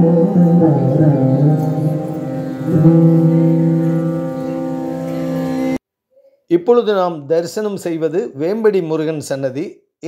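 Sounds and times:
held chord of tones: 0.0 - 5.8.

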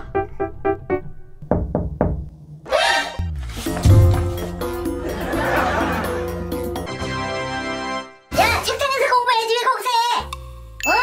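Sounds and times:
background music: 0.0 - 11.0
knocks on a wooden door: 1.4 - 2.3.

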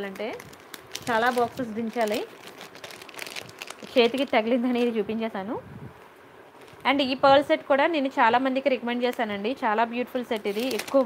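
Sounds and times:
plastic wrapping crinkling: 0.0 - 5.0, 6.6 - 7.0, 10.2 - 11.0.

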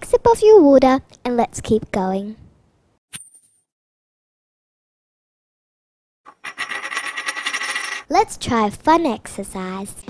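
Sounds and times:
metal coin ringing and rattling: 6.3 - 8.1.

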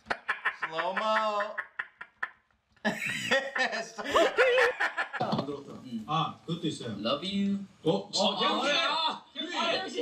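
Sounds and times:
men laughing and snickering: 0.0 - 5.3.

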